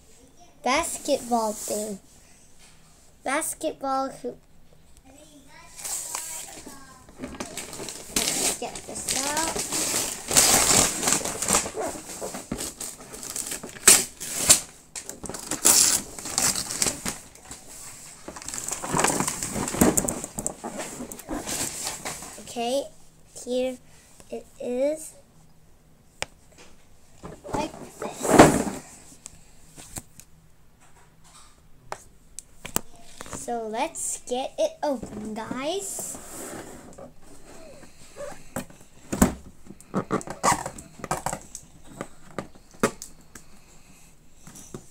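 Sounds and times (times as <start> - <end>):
wrapping paper rustling: 5.8 - 22.5
cardboard box rustling: 7.2 - 14.4.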